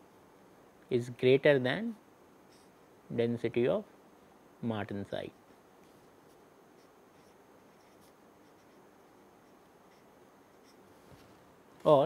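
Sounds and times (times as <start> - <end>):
marker scratching on paper: 6.2 - 10.9.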